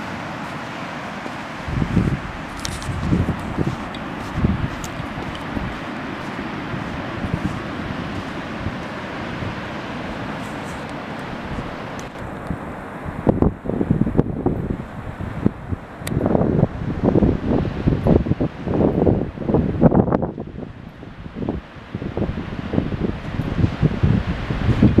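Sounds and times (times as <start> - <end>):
small waves breaking on beach: 0.0 - 25.0
wind buffeting microphone: 0.0 - 25.0.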